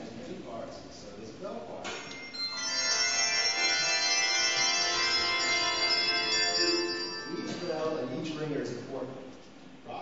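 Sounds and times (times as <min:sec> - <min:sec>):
handbell choir ringing: 0:01.9 - 0:08.2.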